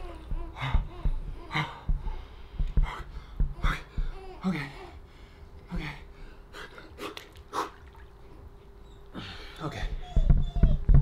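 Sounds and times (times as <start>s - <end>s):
man breathing forcefully: 0.0s - 7.8s
faint steady hum: 0.0s - 11.0s.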